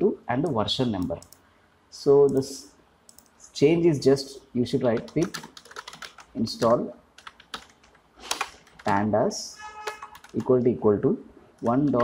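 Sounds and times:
computer keyboard key clicks: 5.0 - 6.3, 9.9 - 10.5.

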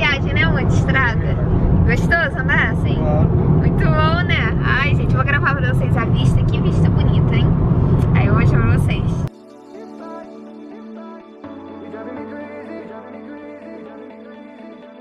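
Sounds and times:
car road and engine rumble: 0.0 - 9.3
people talking: 0.0 - 9.3.

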